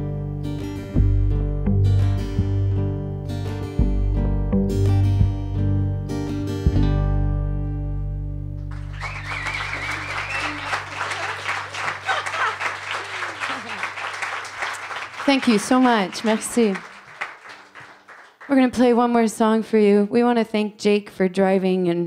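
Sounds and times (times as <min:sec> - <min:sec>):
acoustic guitar chords: 0:00.0 - 0:08.9
applause: 0:08.7 - 0:18.8.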